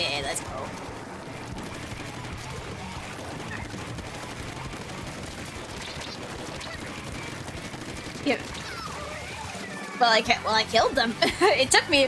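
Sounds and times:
rapid ink weapon fire: 0.4 - 10.0.

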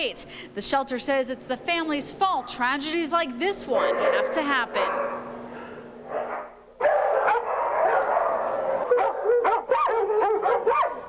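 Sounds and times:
dogs barking and yelping: 3.8 - 11.0.

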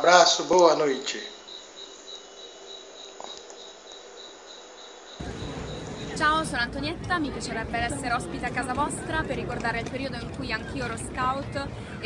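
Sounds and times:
cricket chirping: 0.4 - 6.7
low outdoor rumble: 5.2 - 12.0.

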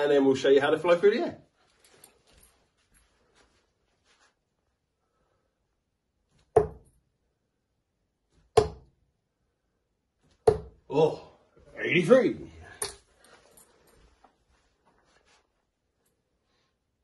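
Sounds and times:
darts thudding into dartboard: 6.4 - 7.0, 8.4 - 8.9, 10.3 - 10.8.

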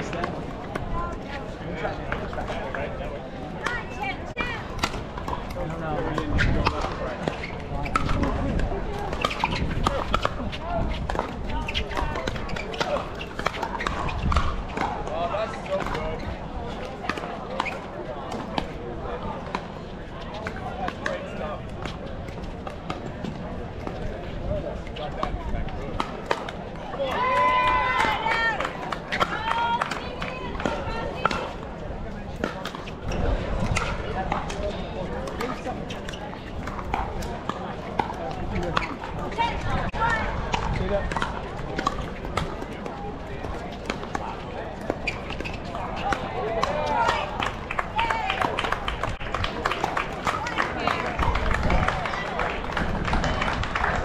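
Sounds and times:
chatter of people: 0.0 - 54.0.

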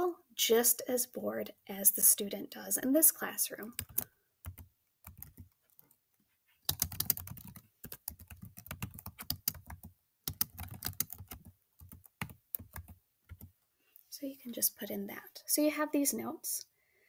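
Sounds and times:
computer keyboard typing: 3.7 - 6.0, 6.6 - 13.5.

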